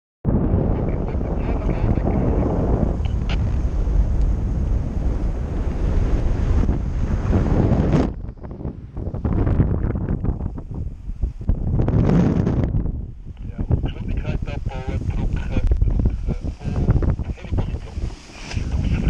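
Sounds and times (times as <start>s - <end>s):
wind rushing over microphone: 0.2s - 19.0s.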